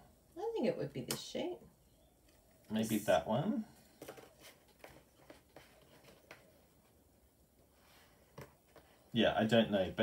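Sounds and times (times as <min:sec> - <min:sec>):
paper rustling and soft ticks: 0:03.8 - 0:07.0.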